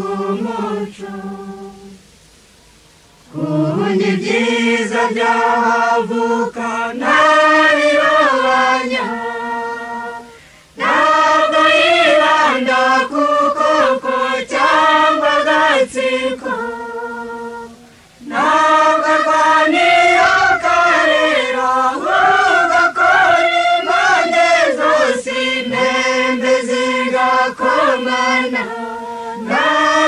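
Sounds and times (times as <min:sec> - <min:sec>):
choir singing: 0:00.0 - 0:02.0, 0:03.3 - 0:30.0.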